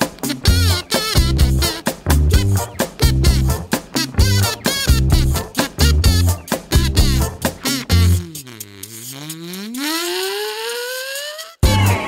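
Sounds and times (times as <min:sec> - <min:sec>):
electro-swing music: 0:00.0 - 0:12.0
swooping pitched tone: 0:07.6 - 0:11.7.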